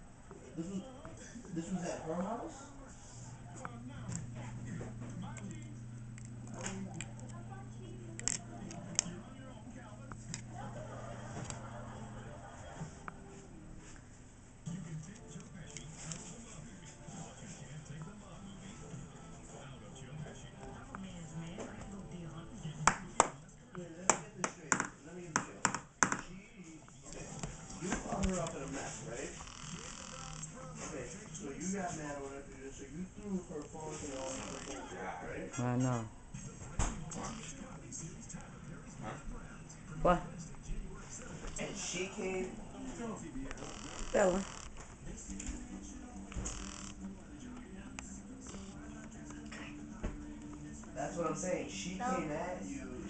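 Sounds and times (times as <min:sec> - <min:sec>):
steady low hum: 0:00.0 - 0:24.0
dog teeth clicking on toy: 0:08.1 - 0:09.1
indistinct voices talking: 0:36.0 - 0:49.2.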